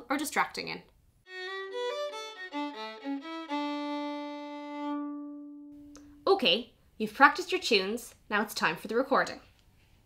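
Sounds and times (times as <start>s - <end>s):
fiddle playing: 1.3s - 6.2s.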